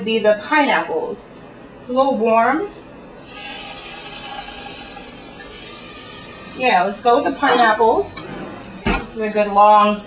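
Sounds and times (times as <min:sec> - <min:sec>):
fruit sizzling in a saucepan: 0:03.2 - 0:08.1.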